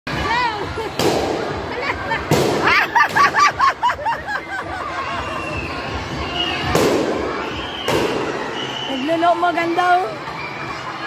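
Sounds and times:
children shouting and cheering: 0:01.6 - 0:11.0.

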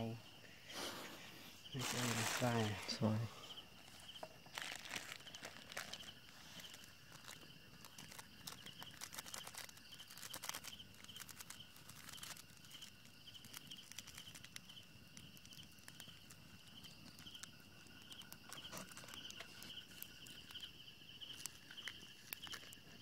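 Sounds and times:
night insects chirping: 0:00.0 - 0:23.0
light crackles: 0:00.7 - 0:23.0.

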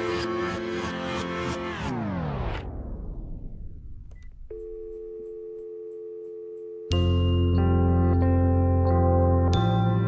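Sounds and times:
click: 0:04.0 - 0:04.4
steady dial tone: 0:04.1 - 0:07.1.

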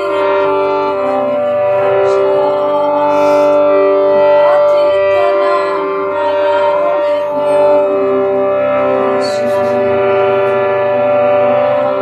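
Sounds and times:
sustained instrumental drone: 0:00.0 - 0:12.0.

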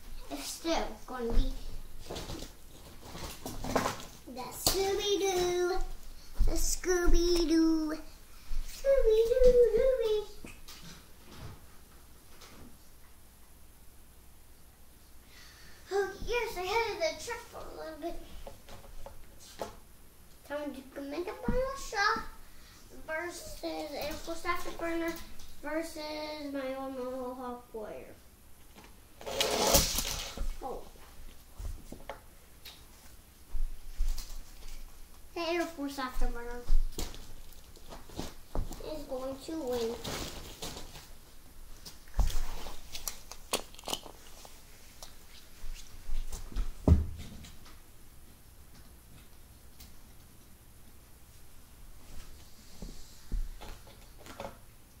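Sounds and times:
child singing: 0:04.4 - 0:08.1, 0:08.8 - 0:10.4.

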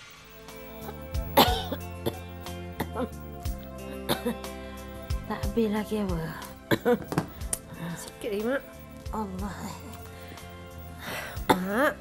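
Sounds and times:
soft background music: 0:00.0 - 0:12.0
woman coughing: 0:00.9 - 0:02.2, 0:02.8 - 0:03.2, 0:04.1 - 0:04.4, 0:06.7 - 0:07.1, 0:11.4 - 0:11.9.

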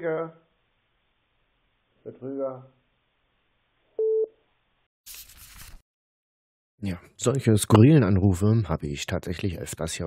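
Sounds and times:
telephone busy tone beep: 0:04.0 - 0:04.3.

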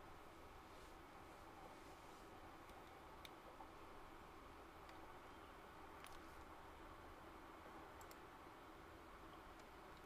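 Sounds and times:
faint steady hum: 0:00.0 - 0:10.0
faint clicks: 0:02.6 - 0:03.7, 0:06.0 - 0:06.5, 0:08.0 - 0:08.3.

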